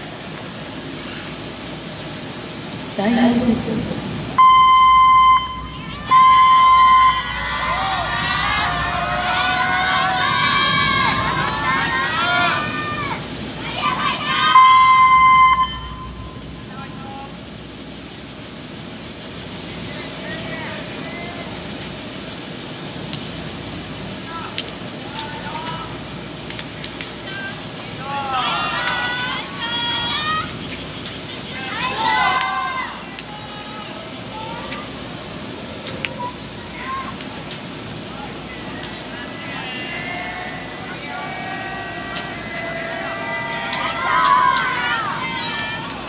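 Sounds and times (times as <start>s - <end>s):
signal horn blasts: 4.4s - 7.9s, 14.5s - 16.5s
many voices calling out: 5.2s - 17.4s, 24.2s - 26.1s, 27.2s - 30.6s, 31.2s - 46.0s.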